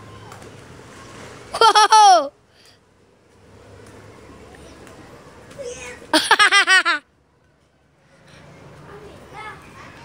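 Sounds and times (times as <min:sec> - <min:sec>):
children playing: 0:00.0 - 0:02.4, 0:03.6 - 0:10.0.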